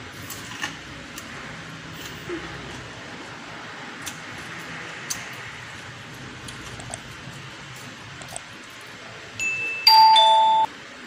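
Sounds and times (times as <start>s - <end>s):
two-note notification chime: 9.4s - 10.7s.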